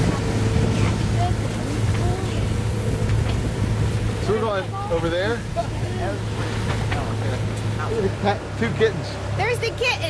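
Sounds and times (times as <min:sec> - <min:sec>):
boat engine droning: 0:00.0 - 0:10.0
water noise: 0:00.0 - 0:10.0
wind: 0:00.0 - 0:10.0.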